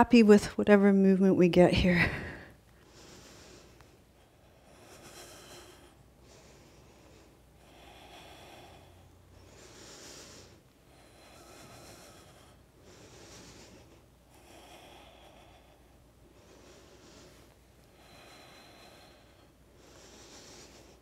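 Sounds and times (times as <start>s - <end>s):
person breathing through nose: 2.1s - 21.0s.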